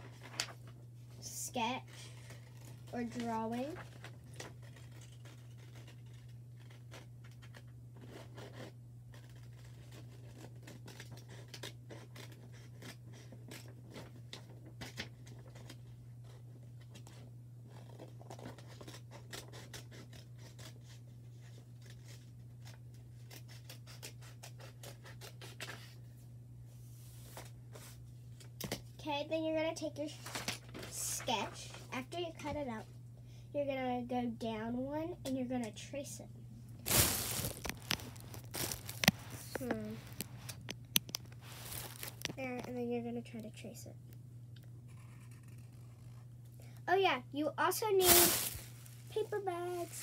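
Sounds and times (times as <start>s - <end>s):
scissors cutting paper: 2.0s - 15.8s, 17.8s - 25.8s.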